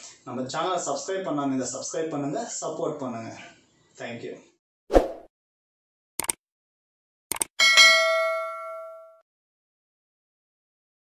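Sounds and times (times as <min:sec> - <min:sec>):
bell ding: 0:07.6 - 0:09.2.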